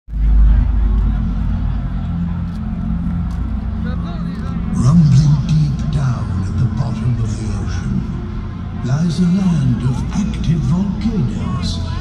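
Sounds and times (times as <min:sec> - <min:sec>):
deep low rumble through speakers: 0:00.1 - 0:12.0
faint crowd voices: 0:00.1 - 0:12.0.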